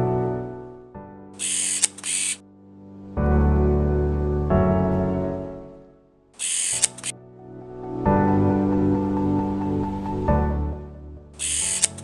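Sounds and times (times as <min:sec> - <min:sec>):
background music: 0:00.0 - 0:12.0
camera shutter clicks: 0:01.4 - 0:02.4, 0:06.4 - 0:07.1.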